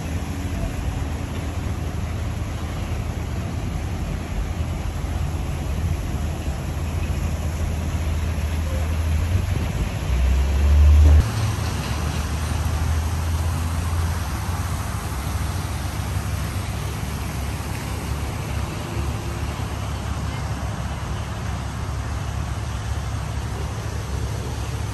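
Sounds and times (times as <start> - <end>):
traffic rumble: 0.0 - 24.9.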